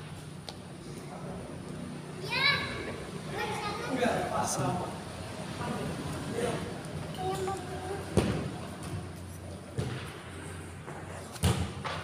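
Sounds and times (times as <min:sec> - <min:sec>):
child shouting: 0:02.2 - 0:04.2.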